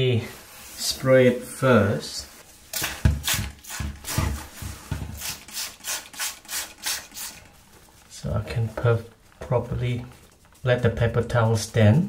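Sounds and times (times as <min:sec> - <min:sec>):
spray bottle squirting: 0:02.7 - 0:04.4, 0:05.2 - 0:07.6.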